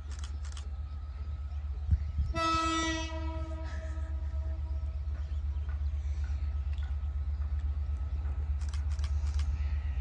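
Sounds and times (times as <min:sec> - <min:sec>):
low train rumble: 0:00.0 - 0:10.0
diesel locomotive horn blast: 0:02.2 - 0:05.1.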